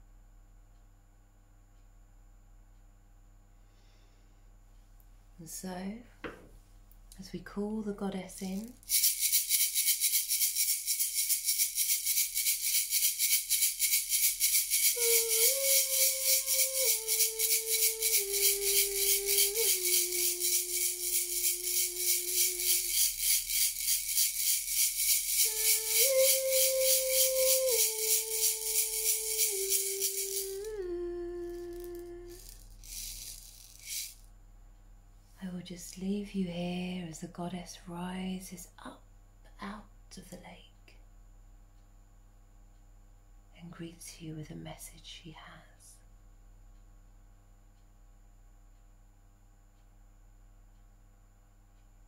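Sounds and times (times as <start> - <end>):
hand rattle shaken rapidly: 8.5 - 30.8, 31.5 - 34.3
woman humming slow tune: 14.5 - 33.4.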